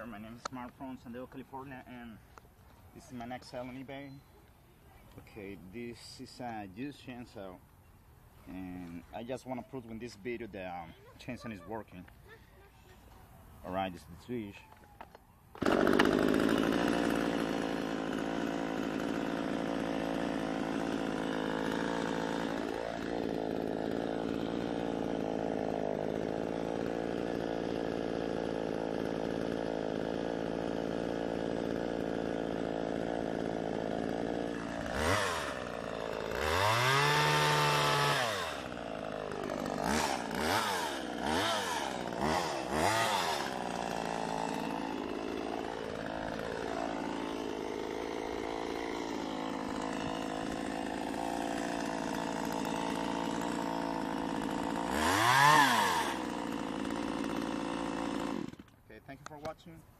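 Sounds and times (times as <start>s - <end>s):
chainsaw engine idling and revving: 15.6s - 59.6s.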